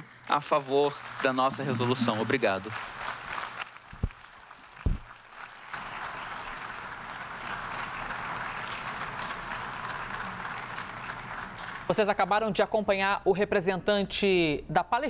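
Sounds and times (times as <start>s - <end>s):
crowd applauding: 0.0s - 12.4s.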